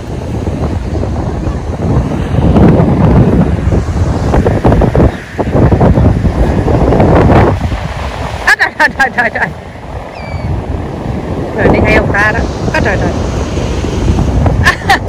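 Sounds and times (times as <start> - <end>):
surf washing: 0.0 - 15.0
wind buffeting microphone: 0.0 - 15.0.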